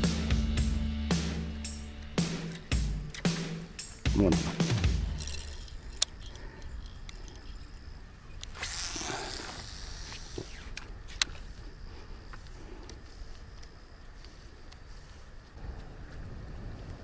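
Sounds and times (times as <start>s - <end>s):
wind rumbling on microphone: 5.2s - 17.0s
faint hiss: 8.4s - 17.0s.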